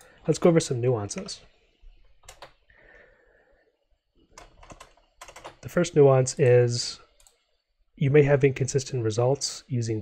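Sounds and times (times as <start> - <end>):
computer keyboard keystrokes: 2.2 - 2.6, 4.4 - 5.6.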